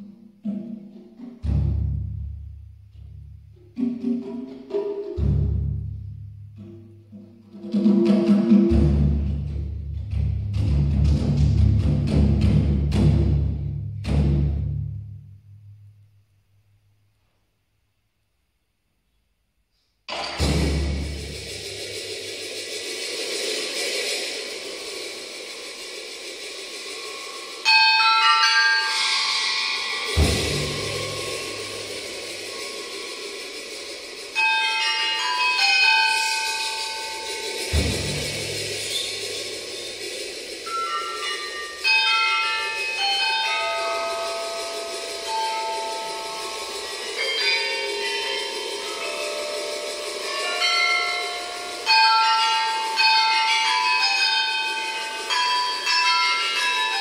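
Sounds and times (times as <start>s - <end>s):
deep drum stroke: 20.1s - 21.9s
sustained metallic shimmer: 20.4s - 57.0s
small tuned bells struck with mallets: 26.6s - 57.0s.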